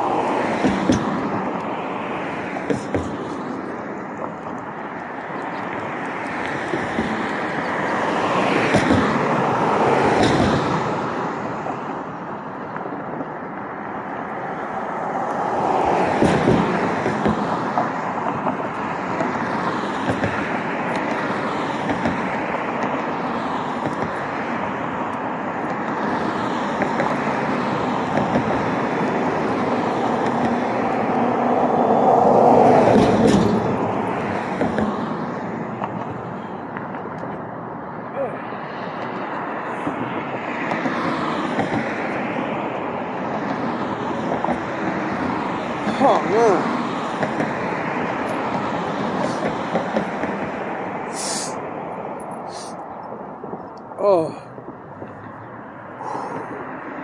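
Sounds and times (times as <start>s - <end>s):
cars driving past: 0.0s - 57.0s.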